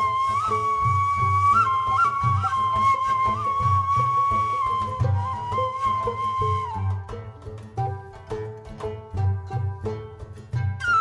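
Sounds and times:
cane flute long note: 0:00.0 - 0:07.1
plucked strings: 0:00.0 - 0:11.0.

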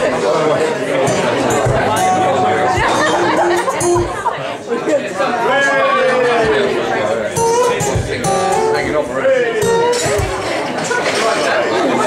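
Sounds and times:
audience chatter: 0:00.0 - 0:12.0
acoustic guitar notes: 0:00.6 - 0:04.5, 0:06.4 - 0:11.2.

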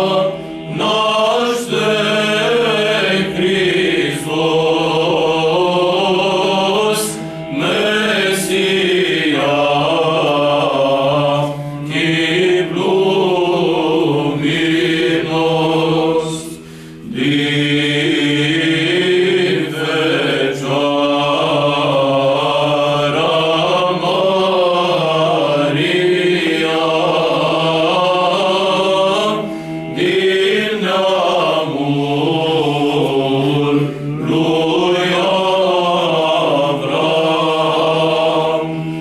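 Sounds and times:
male choir singing unaccompanied: 0:00.0 - 0:39.0.

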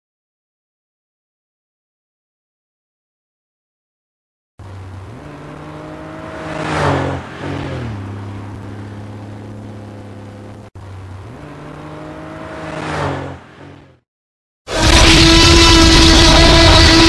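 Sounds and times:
car engine passing by: 0:04.6 - 0:10.6, 0:11.2 - 0:14.0.

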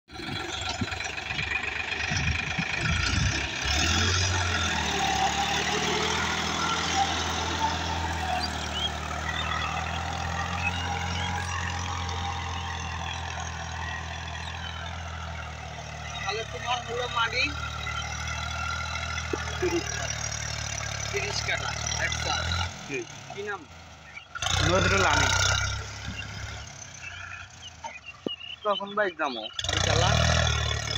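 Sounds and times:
tractor diesel engine: 0:00.1 - 0:30.9.

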